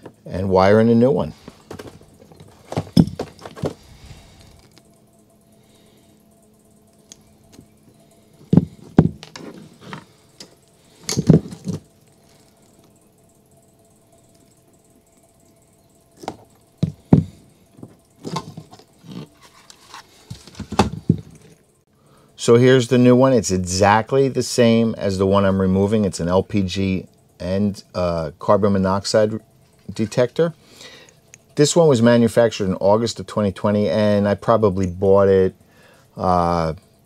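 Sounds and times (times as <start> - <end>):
small parts set down: 1.4 - 4.9, 8.4 - 13.0, 16.2 - 21.6.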